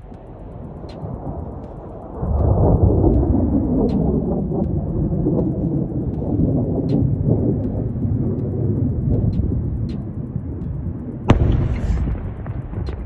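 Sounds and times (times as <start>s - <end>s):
faint irregular ticks: 0.0s - 11.3s
low rumbling noise: 0.0s - 13.0s.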